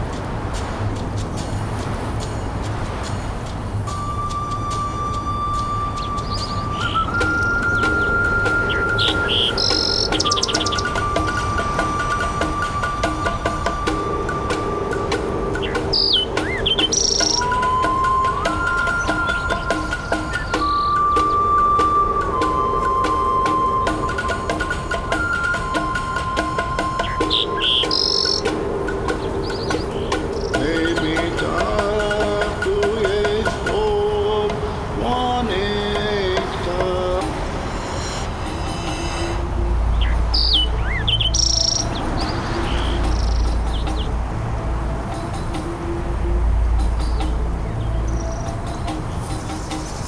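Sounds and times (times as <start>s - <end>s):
birdsong chirps and trills: 0.0s - 50.0s
flute holding long notes: 3.9s - 32.0s.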